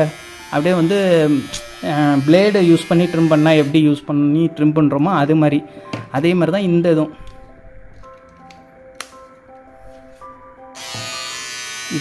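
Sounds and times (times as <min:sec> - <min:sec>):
trimmer buzzing: 0:00.0 - 0:03.8, 0:10.7 - 0:12.0
soft background music: 0:00.0 - 0:12.0.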